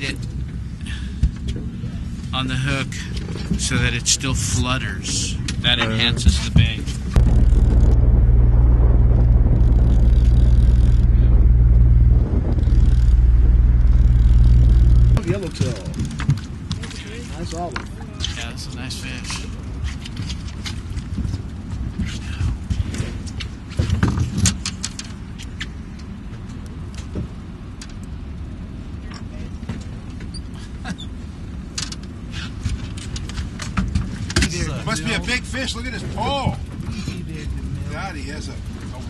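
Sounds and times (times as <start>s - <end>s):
boat engine low rumble: 0.0s - 23.7s, 25.2s - 39.0s.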